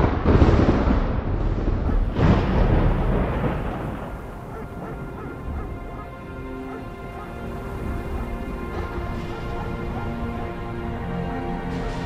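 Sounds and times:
loud rumbling: 0.0 - 12.0
held music notes: 3.8 - 12.0.

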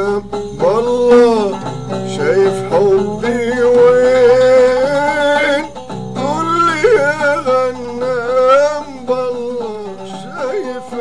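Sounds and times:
instrumental accompaniment: 0.0 - 11.0
man singing folk song: 0.0 - 11.0.

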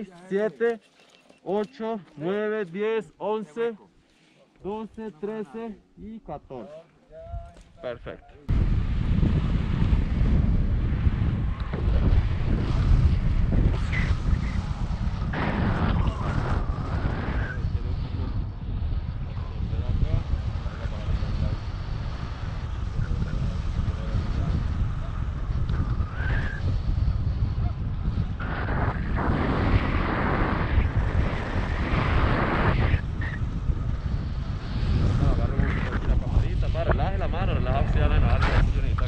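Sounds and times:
wind buffeting microphone: 8.5 - 39.0.

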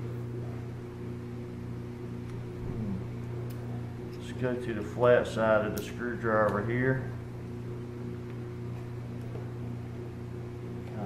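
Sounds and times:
room machinery hum: 0.0 - 11.0.

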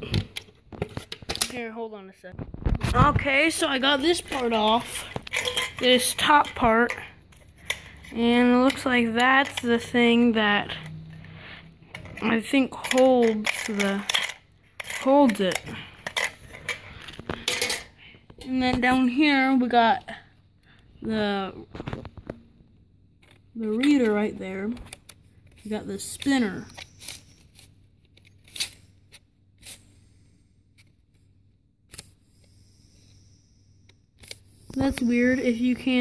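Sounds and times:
clicks and scrapes of drive parts: 2.6 - 9.9
metal parts clicking and rattling: 3.6 - 11.0, 11.9 - 18.0, 23.2 - 36.0.

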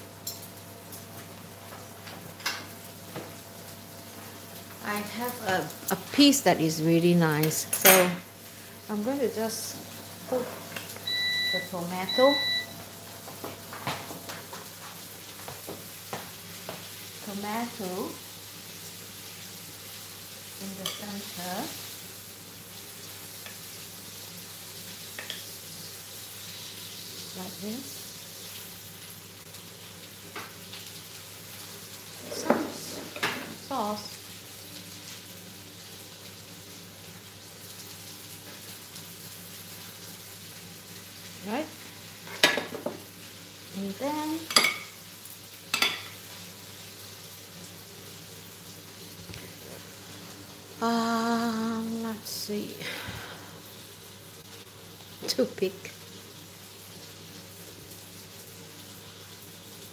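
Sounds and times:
cutlery clinking on plates: 7.7 - 8.2, 44.5 - 45.0, 45.7 - 46.2.

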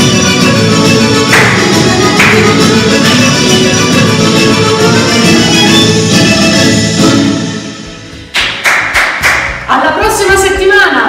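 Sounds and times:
dance music: 0.0 - 11.0
rhythmic hand clapping: 1.2 - 2.9, 8.3 - 9.7.

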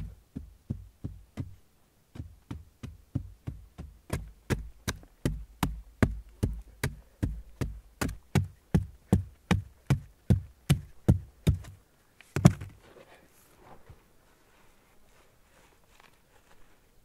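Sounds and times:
stone knocking on hard soil: 12.4 - 12.8.

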